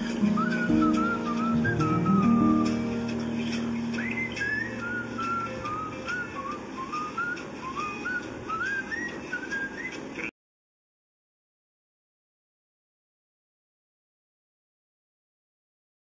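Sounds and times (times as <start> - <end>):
low held chords: 0.0 - 7.2
whistled melody: 0.0 - 10.3.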